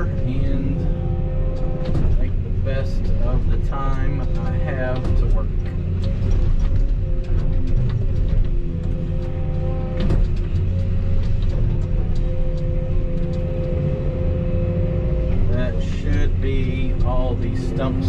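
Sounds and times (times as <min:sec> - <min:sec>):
excavator engine rumble: 0:00.0 - 0:18.0.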